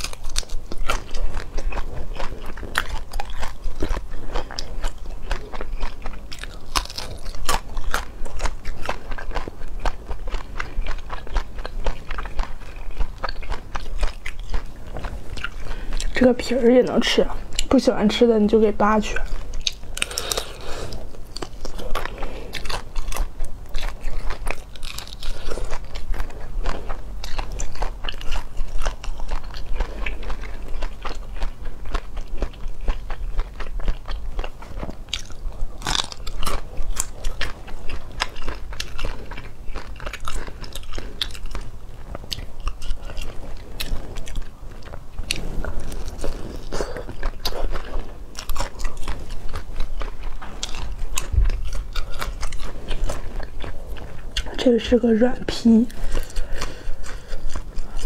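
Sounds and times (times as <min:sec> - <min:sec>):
crunching shrimp shells: 0:00.0 - 0:16.2, 0:19.3 - 0:54.6.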